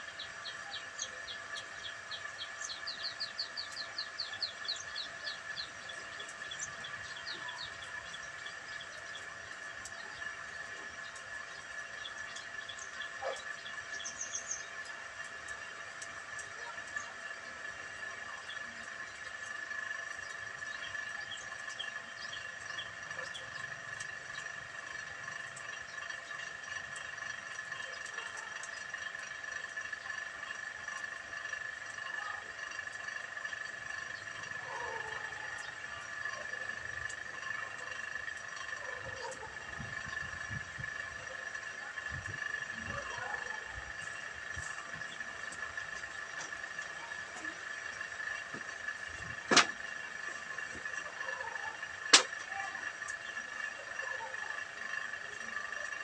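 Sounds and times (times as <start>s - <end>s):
birds chirping: 0.0s - 56.0s
steady high-pitched whine: 0.0s - 56.0s.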